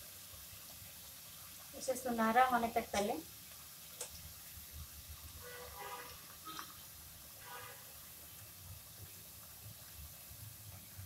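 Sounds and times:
faint sizzle of frying oil: 0.0s - 11.0s.

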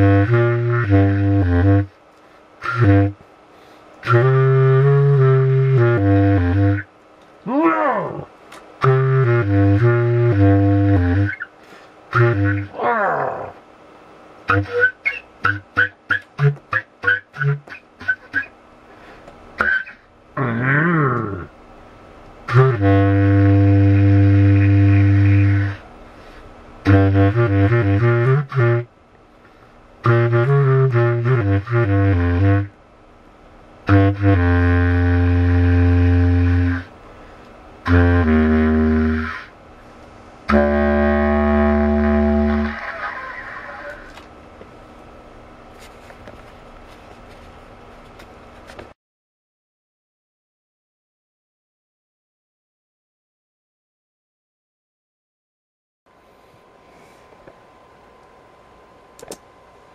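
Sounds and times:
low reed woodwind playing: 0.0s - 2.0s, 2.6s - 3.2s, 4.0s - 6.9s, 7.7s - 11.5s, 12.1s - 13.5s, 14.5s - 18.5s, 22.5s - 25.8s, 26.8s - 28.9s, 30.0s - 32.8s, 33.8s - 36.9s, 37.8s - 39.5s, 40.5s - 44.2s.

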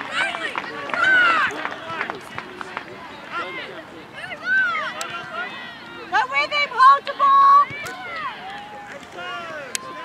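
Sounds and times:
spectators calling and talking: 0.0s - 10.0s.

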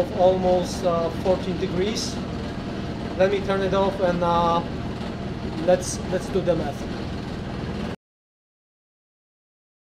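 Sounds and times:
motor hum and fan whoosh: 0.0s - 8.0s.

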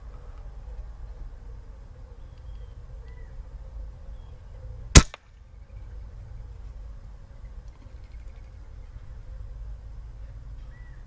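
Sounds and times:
air rifle shot crack: 5.0s - 5.3s.

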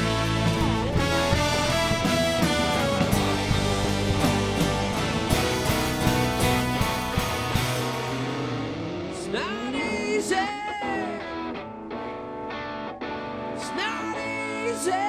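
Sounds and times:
electric guitar bending notes: 0.0s - 15.0s
live rock band playing: 0.0s - 15.0s.

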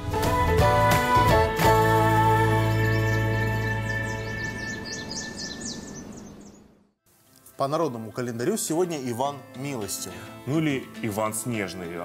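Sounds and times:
bird-like chirps: 2.6s - 6.8s.

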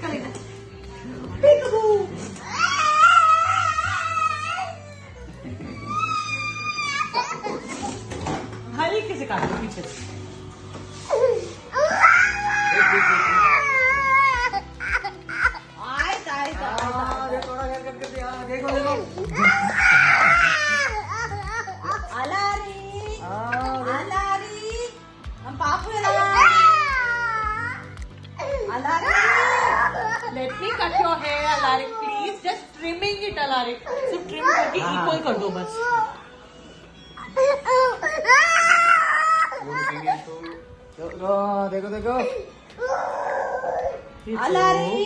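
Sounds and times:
background music with beat: 0.0s - 31.8s
toddler crying: 2.4s - 8.0s, 11.1s - 15.8s, 18.7s - 22.1s, 26.3s - 32.4s, 42.3s - 44.1s.

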